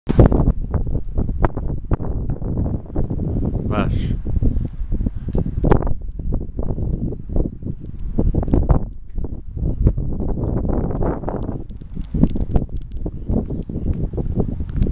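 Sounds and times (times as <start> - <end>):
wind buffeting microphone: 0.1 - 14.9.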